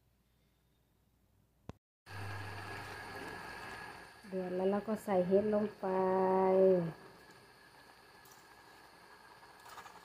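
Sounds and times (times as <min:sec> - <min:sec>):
low hum: 0:02.1 - 0:08.2
pot boiling with hiss: 0:02.1 - 0:10.0.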